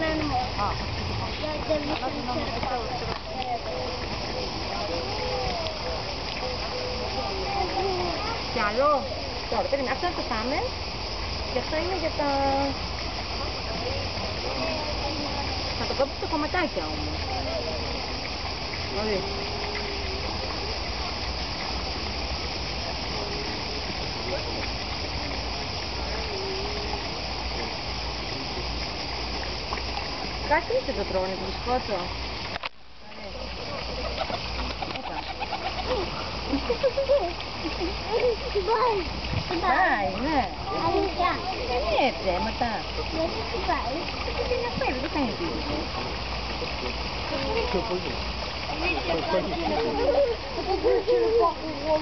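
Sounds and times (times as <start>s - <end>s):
people chattering: 0.0s - 32.3s, 33.0s - 52.0s
running water: 0.0s - 52.0s.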